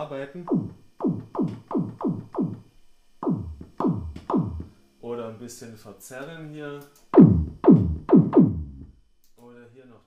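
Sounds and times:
deep synthesized kick drum thuds: 0.5 - 4.7, 7.2 - 9.0.

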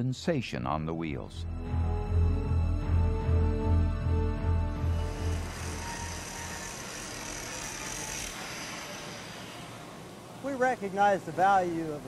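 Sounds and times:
background music: 0.0 - 8.3
fabrication shop noise: 4.8 - 12.0.

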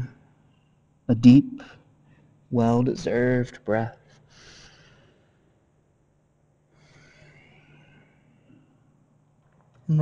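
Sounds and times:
low steady hum: 0.0 - 10.0
man breathing slowly: 4.3 - 5.4, 6.7 - 8.8.

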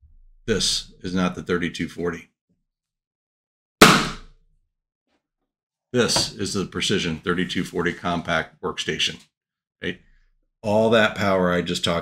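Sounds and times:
balloon bursting: 3.8 - 4.3.

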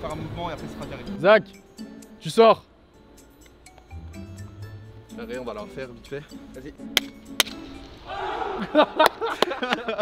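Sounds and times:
men cheering and whooping: 8.0 - 10.0.

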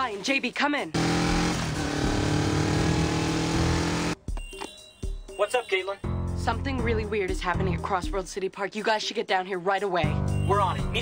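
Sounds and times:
vehicle engine running: 1.0 - 4.2.

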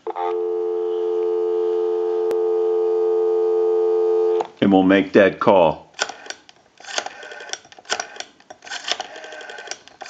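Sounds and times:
telephone dial tone: 0.1 - 4.4.

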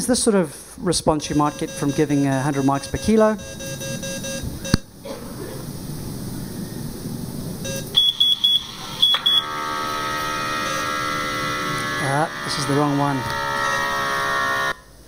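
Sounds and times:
electronic alarm tone: 1.2 - 4.8, 7.6 - 14.8
short high monitor beeps: 1.3 - 4.8, 7.6 - 9.5.

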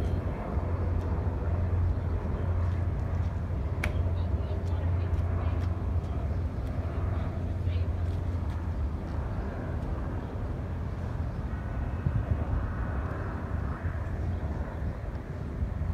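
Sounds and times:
aircraft engine drone: 0.0 - 15.9
faint voices: 3.6 - 8.6.

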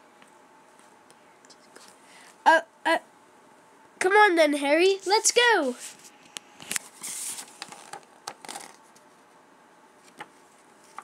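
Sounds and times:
book page turning: 5.8 - 9.1, 10.0 - 11.0.

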